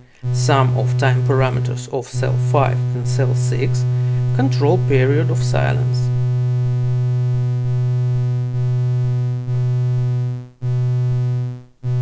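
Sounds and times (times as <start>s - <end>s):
gated synthesizer drone: 0.0s - 12.0s.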